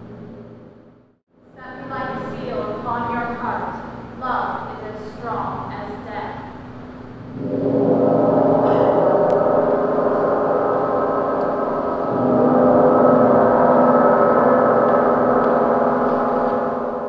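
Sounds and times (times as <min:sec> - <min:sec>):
large gong ringing: 0:07.1 - 0:17.0.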